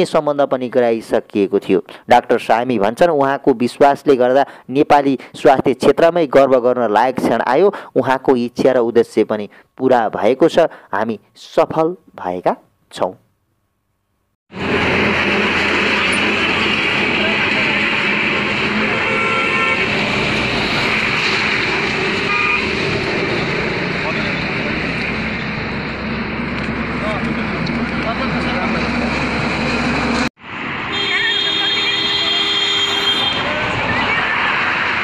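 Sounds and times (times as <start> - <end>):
traffic noise: 14.5 - 35.0
vehicle horn toots: 18.8 - 20.0, 22.3 - 22.7, 30.9 - 33.6
crowd voices: 33.2 - 35.0.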